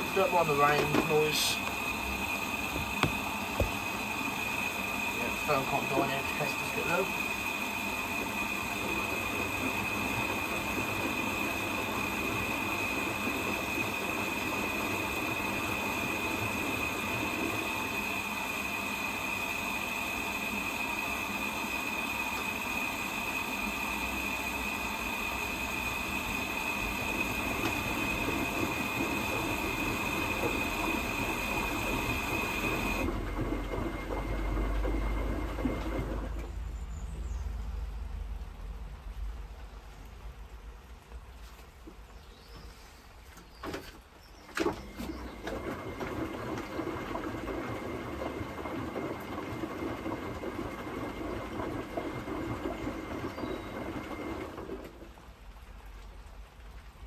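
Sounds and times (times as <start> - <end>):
water hissing into washing machine: 0.0 - 36.6, 43.7 - 57.0.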